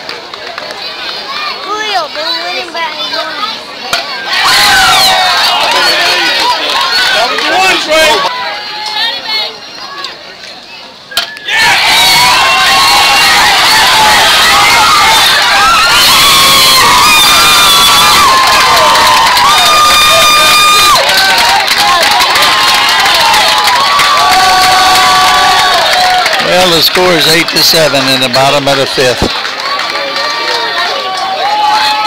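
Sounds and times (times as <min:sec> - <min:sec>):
crowd cheering and shouting: 0:00.0 - 0:10.2, 0:11.0 - 0:32.0.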